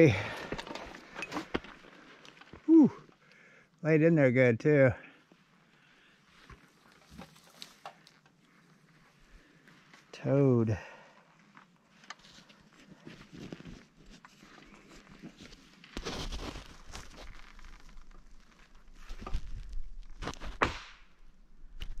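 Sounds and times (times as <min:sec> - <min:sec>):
footsteps on forest floor: 0:06.3 - 0:10.1, 0:12.2 - 0:19.6.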